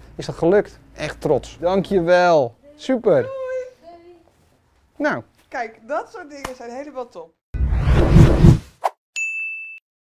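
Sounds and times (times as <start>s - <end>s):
loud rushing whoosh: 7.6s - 8.7s
high ding: 9.2s - 9.8s.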